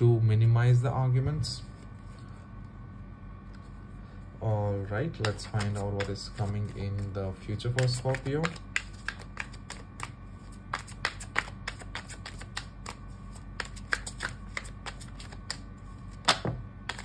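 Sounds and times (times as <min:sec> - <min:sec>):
cards being shuffled: 0:05.2 - 0:17.0.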